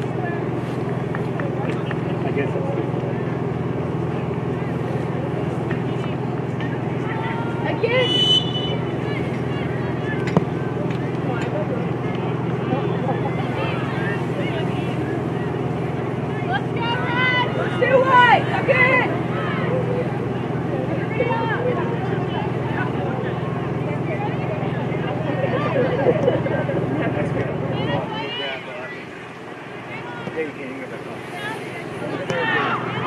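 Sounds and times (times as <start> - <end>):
low hum of outdoor noise: 0.0 - 33.0
players shouting: 0.0 - 33.0.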